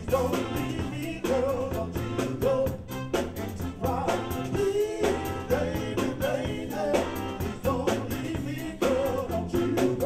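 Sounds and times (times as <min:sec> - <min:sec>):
band playing: 0:00.0 - 0:10.0
vocal group singing: 0:00.0 - 0:10.0.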